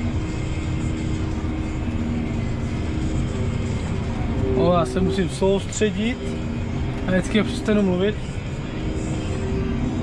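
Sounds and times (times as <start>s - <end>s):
muffled tractor engine drone: 0.0s - 10.0s.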